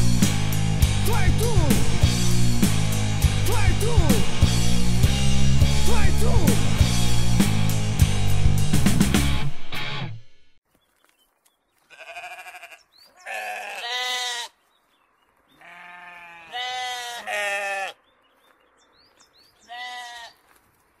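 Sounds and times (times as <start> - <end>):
sheep bleating: 11.8 - 14.6, 15.5 - 18.0, 19.6 - 20.4.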